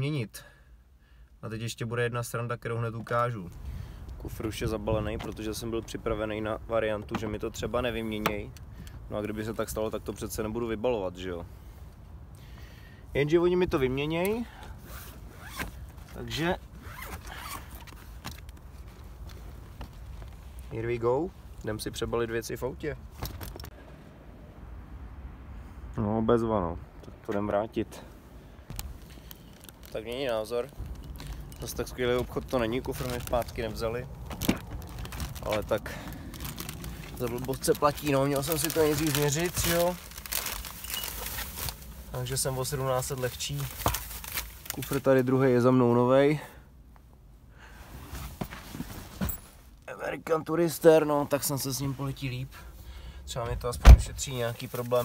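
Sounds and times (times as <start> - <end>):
fabric suitcase rustling: 28.8 - 41.9.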